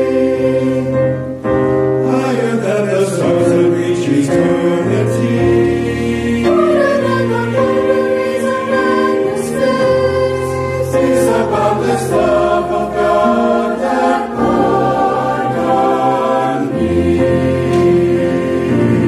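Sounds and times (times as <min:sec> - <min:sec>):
mixed choir singing a hymn: 0:00.0 - 0:19.0.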